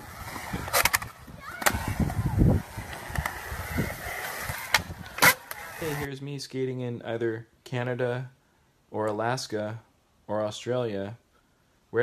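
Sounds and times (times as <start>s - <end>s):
wheels rolling on concrete: 0.0s - 6.1s.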